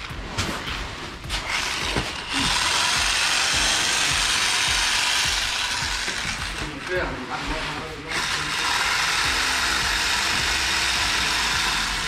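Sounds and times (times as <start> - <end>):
bag-closing sewing machine running: 1.4 - 12.0.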